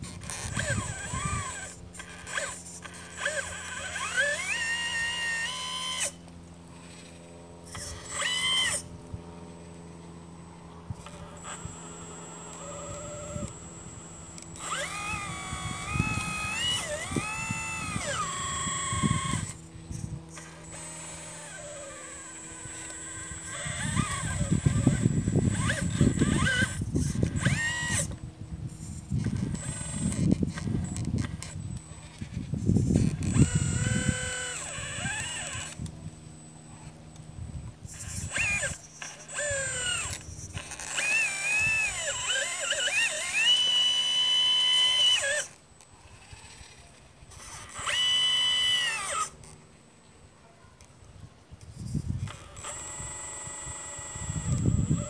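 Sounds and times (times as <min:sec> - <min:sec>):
electric pump and valves whining: 0:00.0 - 0:49.7, 0:52.2 - 0:55.0
steady low hum: 0:00.0 - 0:55.0.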